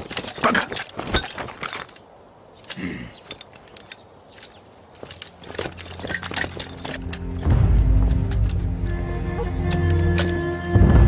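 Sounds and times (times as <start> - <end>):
soldiers' gear clinking: 0.0 - 10.8
tense film score drone: 6.7 - 11.0.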